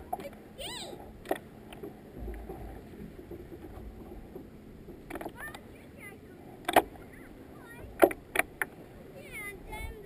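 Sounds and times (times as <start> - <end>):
low water wash: 0.0 - 10.0
paddle splashing water: 0.0 - 10.0.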